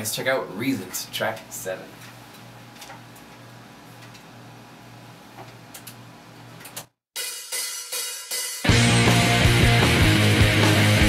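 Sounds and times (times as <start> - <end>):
song playing quietly: 7.2 - 11.0.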